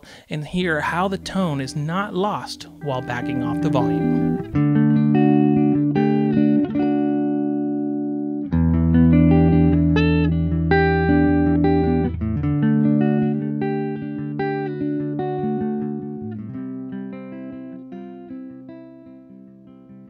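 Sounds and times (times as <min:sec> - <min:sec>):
electric guitar ringing chords: 0:00.6 - 0:20.0.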